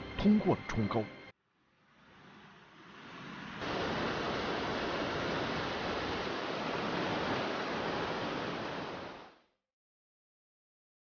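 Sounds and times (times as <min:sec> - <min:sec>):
mountain stream rushing: 0:01.9 - 0:09.4.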